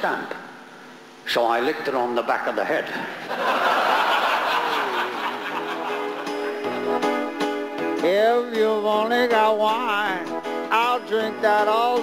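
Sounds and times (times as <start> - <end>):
audience laughing: 3.2 - 7.0.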